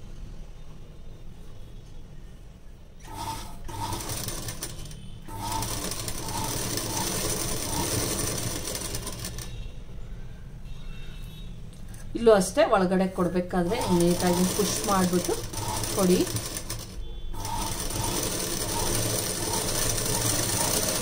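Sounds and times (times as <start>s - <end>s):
sewing machine stitching: 3.0s - 9.6s, 13.5s - 21.0s.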